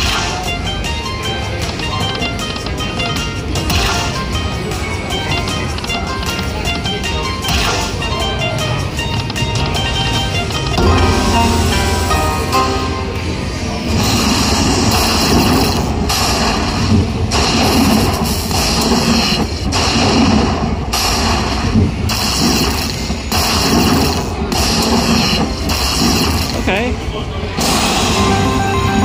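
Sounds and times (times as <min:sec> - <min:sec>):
slot machine game music: 0:00.0 - 0:16.1, 0:27.8 - 0:29.0
slot machine bonus sound effects: 0:09.7 - 0:15.9, 0:27.8 - 0:29.0.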